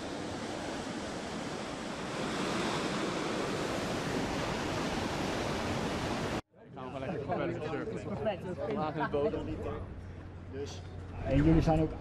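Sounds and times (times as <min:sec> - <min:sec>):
wave breaking whitewater rush: 0:00.0 - 0:06.4.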